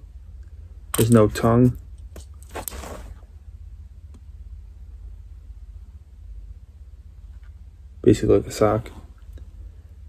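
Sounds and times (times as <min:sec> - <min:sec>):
low steady hum: 0:00.0 - 0:10.0
shoe rustling: 0:02.2 - 0:03.3.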